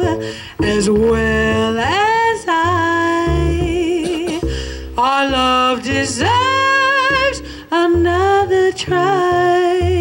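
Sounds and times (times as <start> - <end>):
woman singing jazz: 0.0 - 10.0.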